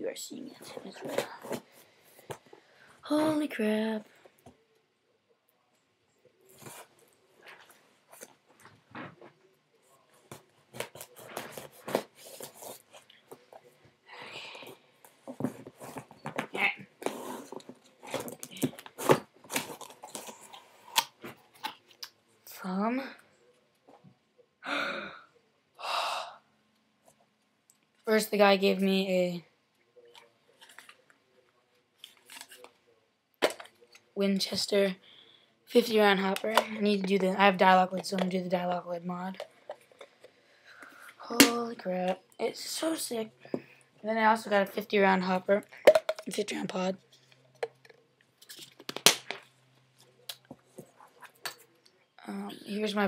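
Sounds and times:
person sighing: 24.6 - 26.4.

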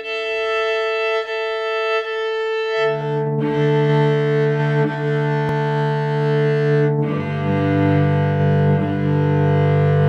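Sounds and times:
cello bowing low note: 0.0 - 10.0.

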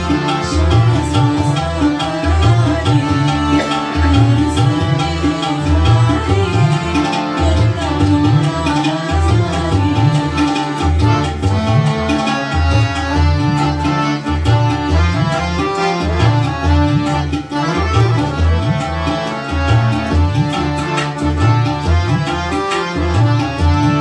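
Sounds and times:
accordion-like keyboard melody: 0.0 - 24.0
tabla drum rhythm: 0.0 - 24.0.

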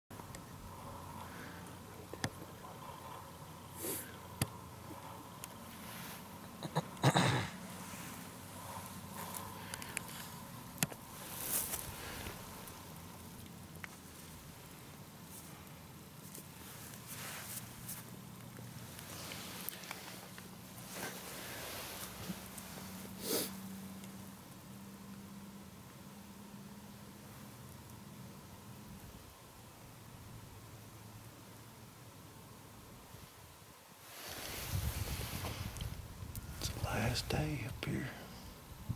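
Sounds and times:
faint steady hiss: 0.1 - 38.9
low steady hum: 0.1 - 38.9
clothing rustling against microphone: 7.6 - 12.8, 16.2 - 23.3, 34.0 - 35.9.

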